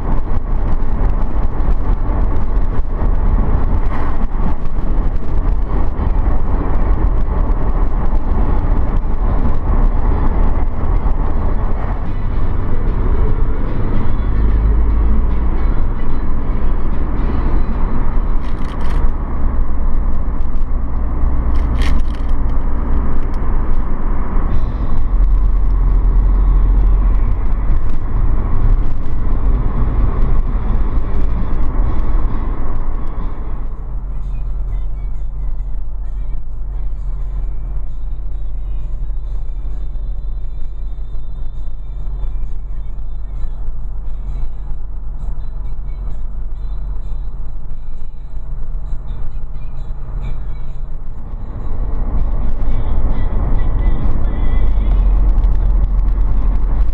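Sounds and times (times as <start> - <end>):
car engine and tyre noise: 0.0 - 56.9.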